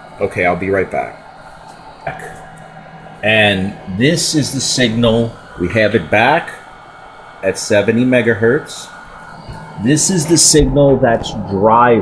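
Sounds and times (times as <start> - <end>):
low hum of test equipment: 0.0 - 12.0.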